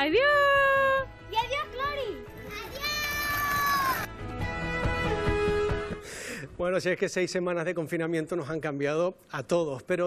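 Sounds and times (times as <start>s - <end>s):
background music with held notes: 0.0s - 6.6s
child squealing: 2.8s - 4.1s.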